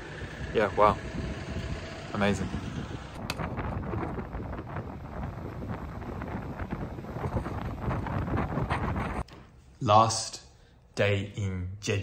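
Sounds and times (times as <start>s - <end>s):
wind buffeting microphone: 0.2s - 9.2s.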